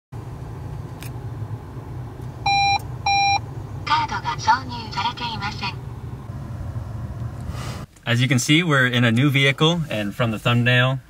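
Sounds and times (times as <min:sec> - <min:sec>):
low steady rumble: 0:00.2 - 0:11.0
short electronic beeps: 0:02.5 - 0:03.4.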